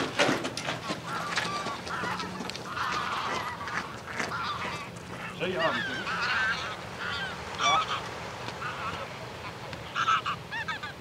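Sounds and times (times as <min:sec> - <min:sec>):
geese honking: 0:00.0 - 0:11.0.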